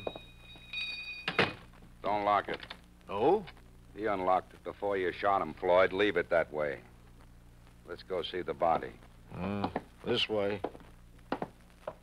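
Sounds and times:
faint steady high tones: 0.0s - 6.8s.

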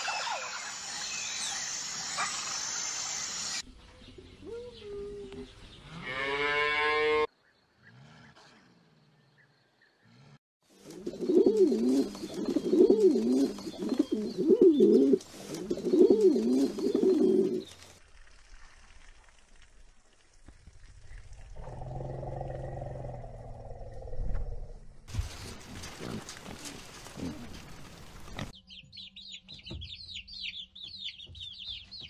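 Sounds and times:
pigeons cooing: 10.9s - 17.7s
irregular rustling: 25.1s - 28.6s.

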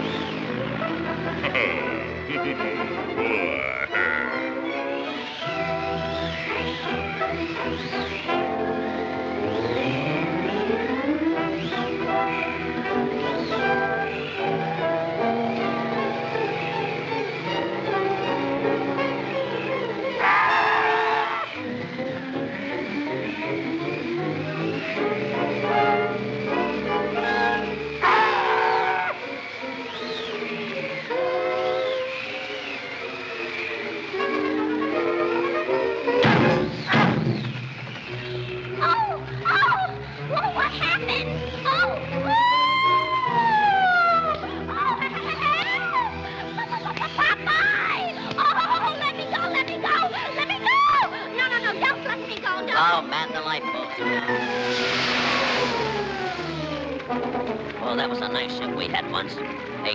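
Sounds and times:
orchestral cartoon music: 0.0s - 59.9s
short noisy bursts: 54.3s - 57.0s.

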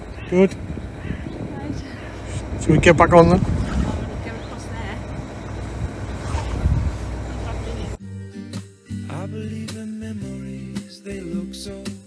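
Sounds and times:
boat engine idling: 0.0s - 8.0s
wind buffeting microphone: 0.0s - 8.0s
acoustic guitar music: 4.0s - 12.0s.

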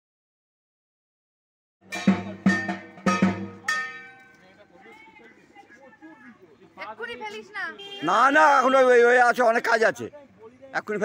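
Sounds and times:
struck metal percussion ringing: 1.8s - 4.4s.

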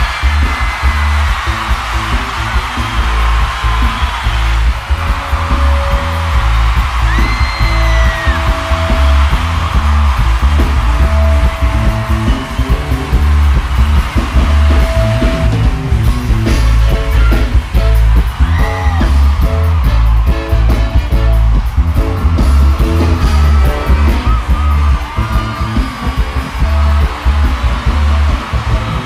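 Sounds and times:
live band through loudspeakers: 0.0s - 29.0s.

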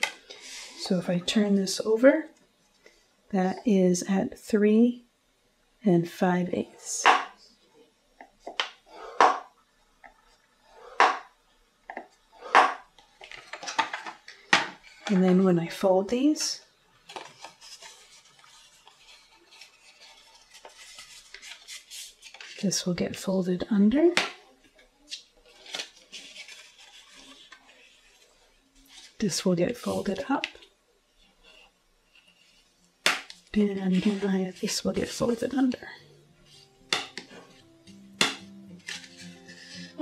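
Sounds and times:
paper scraping: 17.2s - 22.6s, 25.4s - 29.2s, 33.6s - 35.4s, 38.7s - 40.0s
bone folder scraping cardstock: 38.2s - 40.0s
paper rubbing on paper: 38.8s - 40.0s.

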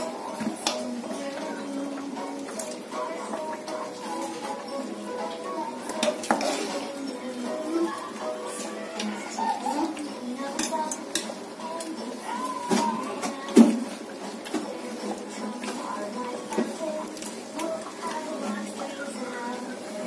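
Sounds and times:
metal ladle scraping pot: 5.9s - 7.1s.

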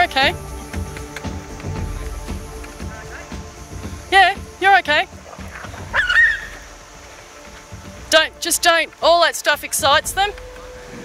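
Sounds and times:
dingo yelping: 5.9s - 6.6s.

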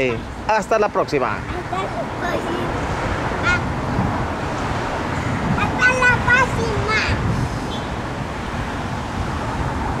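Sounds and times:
city background rumble: 0.0s - 10.0s.

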